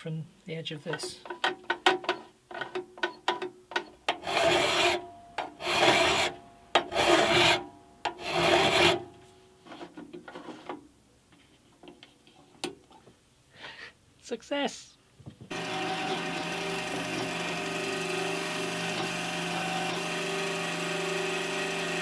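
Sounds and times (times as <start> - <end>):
file rasping on metal: 4.1 - 5.0, 5.6 - 9.1, 15.5 - 22.0.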